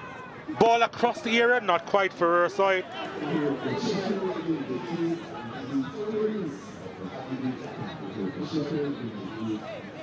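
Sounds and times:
crowd voices chattering and calling: 0.0s - 10.0s.

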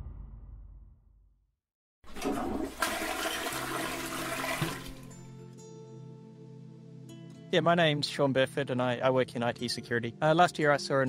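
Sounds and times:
toilet flushing: 2.1s - 5.3s.

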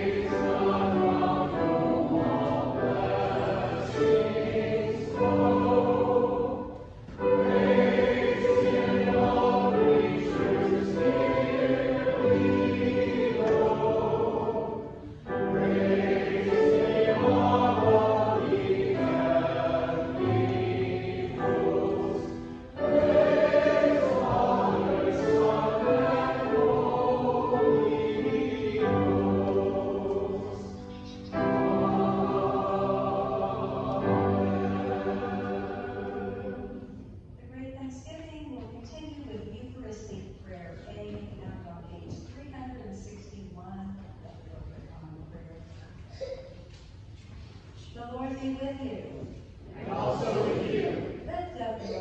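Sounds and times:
choir singing: 0.0s - 37.2s, 49.6s - 51.3s.

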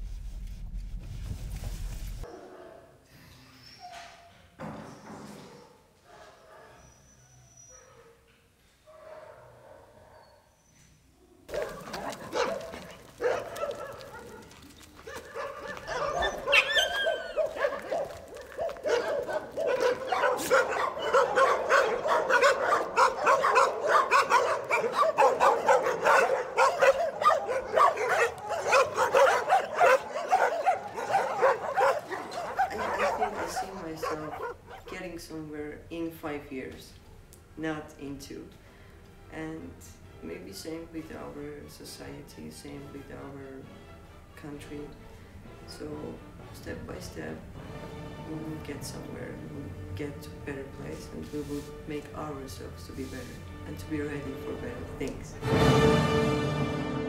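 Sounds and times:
dogs barking and yelping: 5.4s - 8.3s, 8.9s - 10.9s, 11.5s - 34.9s
dog howling: 11.5s - 34.9s.

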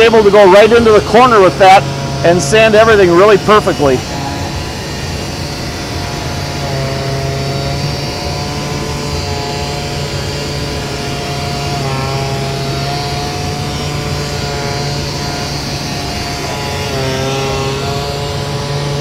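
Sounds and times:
pneumatic sander running: 0.0s - 19.0s.

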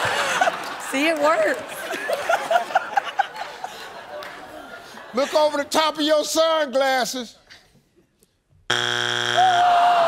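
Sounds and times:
harsh low buzzer: 8.7s - 9.8s
drawn-out oh from voices: 9.1s - 10.0s.

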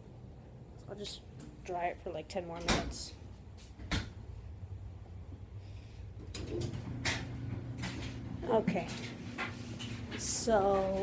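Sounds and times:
dryer motor hum: 0.0s - 11.0s.

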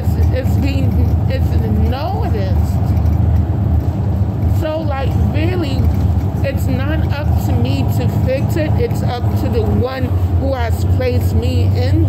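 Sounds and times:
bus rumble and road noise: 0.0s - 12.0s.

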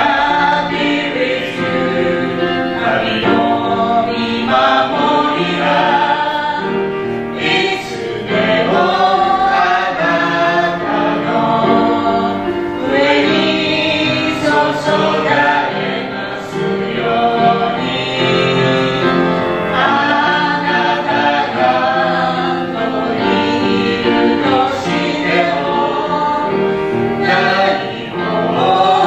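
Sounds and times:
group singing a hymn: 0.0s - 29.0s.

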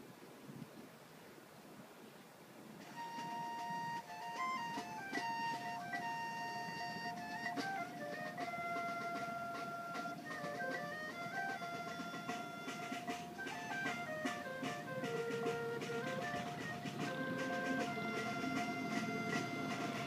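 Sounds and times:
marching band playing: 2.8s - 20.0s.

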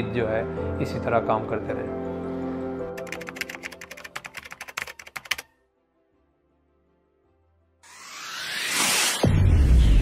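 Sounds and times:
keyboard typing clicks: 2.9s - 5.5s.

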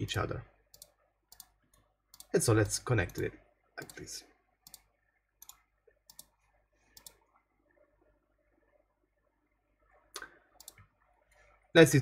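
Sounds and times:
computer mouse clicks: 0.7s - 4.0s, 4.6s - 7.4s, 10.2s - 10.9s.

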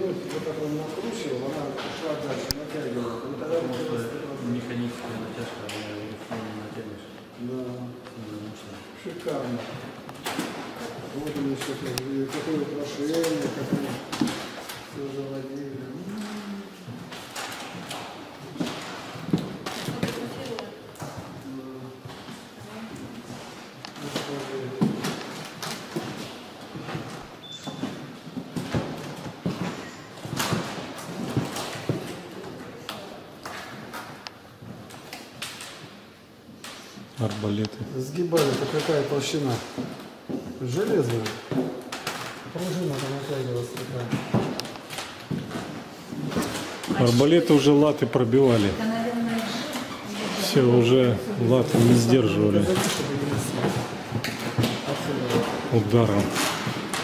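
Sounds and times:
indistinct talking of visitors: 45.8s - 57.0s.

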